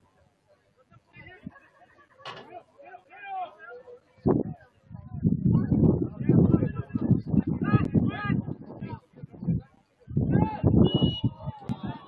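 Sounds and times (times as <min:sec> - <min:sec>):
players and coaches calling out: 0:00.4 - 0:12.0.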